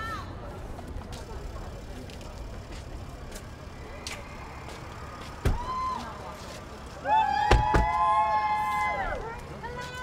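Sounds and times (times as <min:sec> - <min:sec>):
rumble of vehicles: 0:00.0 - 0:10.0.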